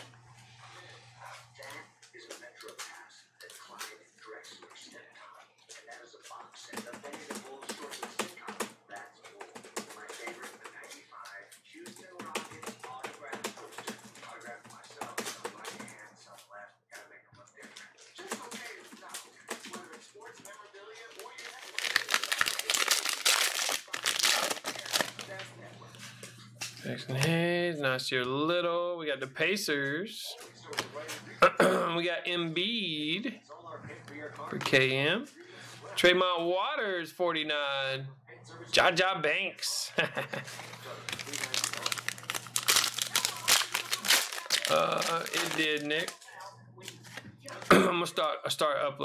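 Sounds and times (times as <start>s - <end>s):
cards handled with clicks and rustles: 16.9s - 27.4s, 30.4s - 31.3s, 40.2s - 47.7s
foil pack crinkling and tearing: 21.1s - 25.4s, 41.0s - 46.3s.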